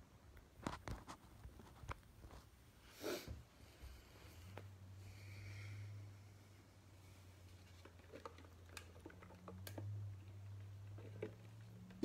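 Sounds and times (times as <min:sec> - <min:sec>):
small objects clicking and tapping: 0:07.8 - 0:12.0.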